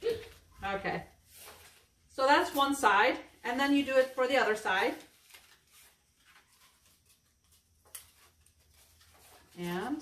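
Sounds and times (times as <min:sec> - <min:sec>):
paper and tape rustling: 0:00.0 - 0:10.0.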